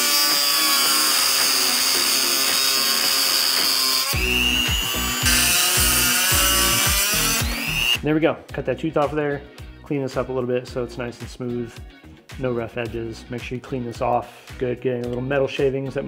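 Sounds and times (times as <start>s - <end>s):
rotary tool cutting metal: 0.0s - 8.0s
background music with a beat: 1.4s - 16.0s.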